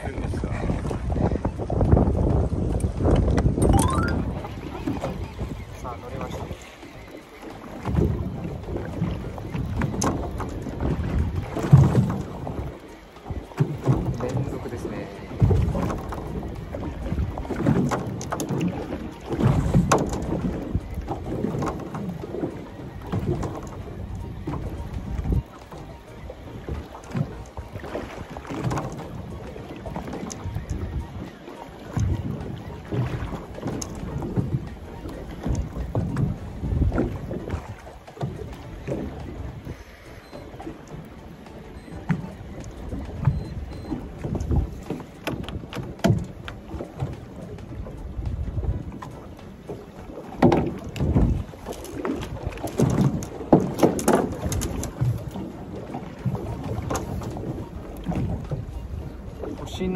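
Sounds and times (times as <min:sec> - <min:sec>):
wind buffeting microphone: 0:00.0 - 0:06.7, 0:07.6 - 0:59.9
water slapping boat hull: 0:00.0 - 0:59.9.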